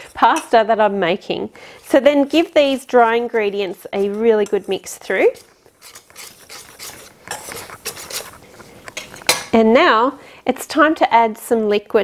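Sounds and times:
wire whisk stirring flour in bowl: 0:01.8 - 0:09.4.

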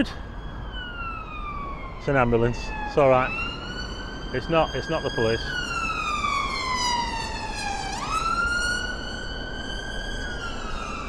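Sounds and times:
ambulance siren wailing: 0:00.0 - 0:11.0.

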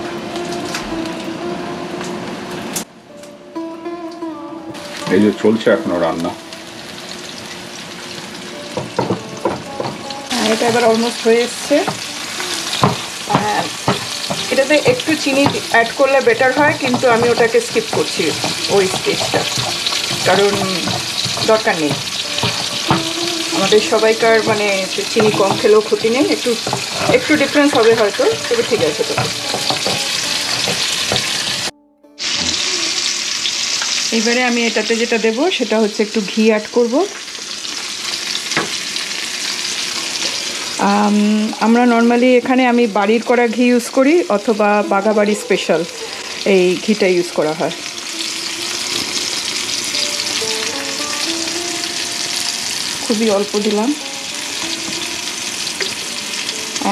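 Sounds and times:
vegetables sizzling in a pan: 0:04.7 - 0:56.9
spatula scraping a pan: 0:12.7 - 0:31.7.

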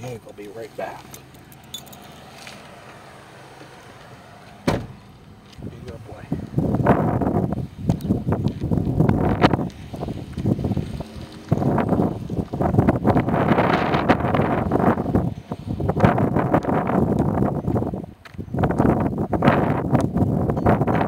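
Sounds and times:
footsteps on asphalt: 0:00.0 - 0:13.2, 0:15.1 - 0:19.0
wind buffeting microphone: 0:00.0 - 0:21.0.

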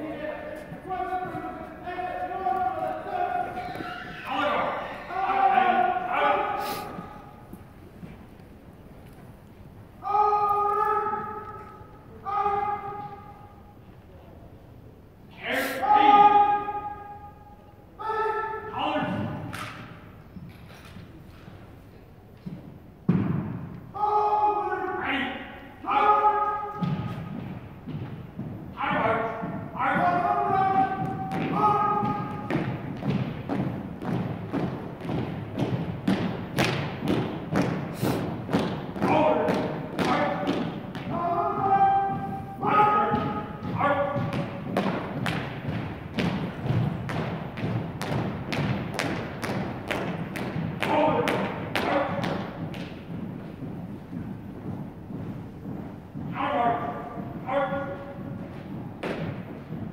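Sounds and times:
boots marching on wooden floor: 0:00.0 - 0:09.7, 0:26.7 - 0:59.9.

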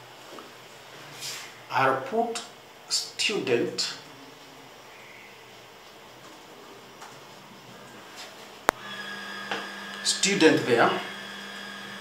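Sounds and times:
steady motor hum: 0:07.6 - 0:12.0.

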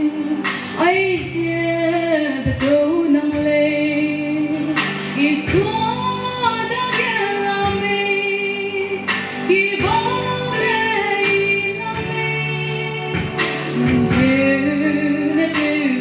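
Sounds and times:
instrumental accompaniment: 0:00.0 - 0:16.0
woman singing into a microphone: 0:00.0 - 0:16.0.

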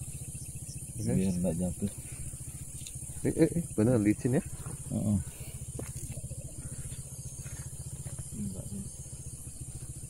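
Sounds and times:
small engine idling: 0:00.0 - 0:10.0.

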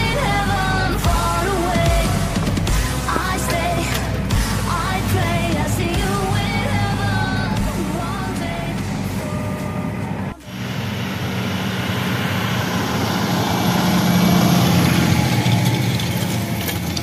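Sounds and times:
tractor diesel engine running: 0:00.0 - 0:17.0.

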